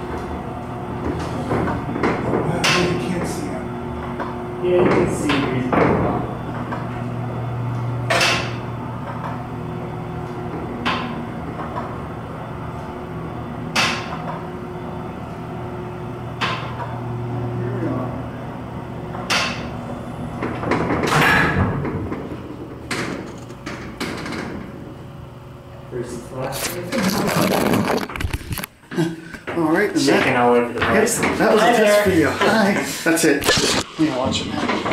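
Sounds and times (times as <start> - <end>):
elevator car hum: 0.0 - 28.7
elevator clicks and knocks: 1.0 - 3.3, 19.1 - 24.8.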